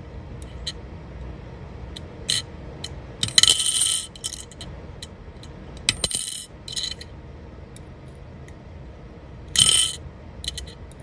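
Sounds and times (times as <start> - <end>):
tweezers clicking on coin: 9.6 - 10.8.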